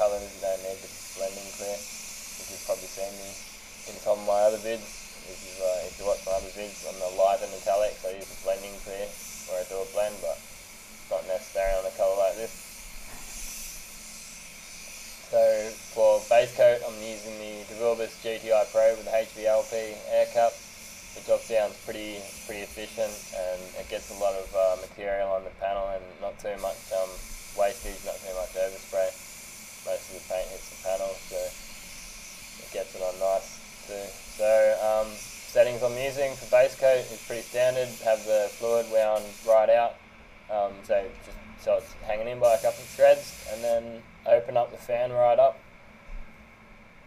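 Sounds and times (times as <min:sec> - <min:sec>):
man talking: 0:00.0 - 0:01.8, 0:02.4 - 0:10.4, 0:11.1 - 0:12.5, 0:15.3 - 0:20.6, 0:21.2 - 0:29.2, 0:29.9 - 0:31.6, 0:32.6 - 0:45.6
spray gun air hiss: 0:00.0 - 0:45.5.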